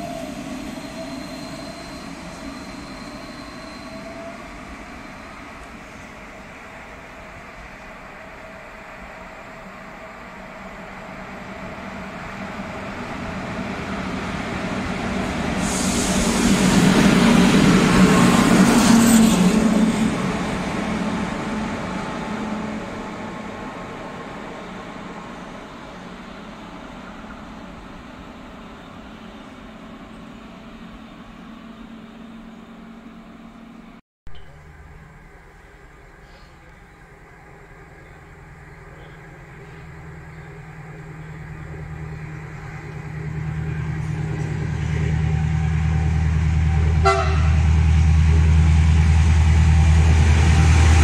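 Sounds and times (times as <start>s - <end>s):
locomotive passing with rushing hiss: 0.0s - 33.9s, 34.7s - 51.0s.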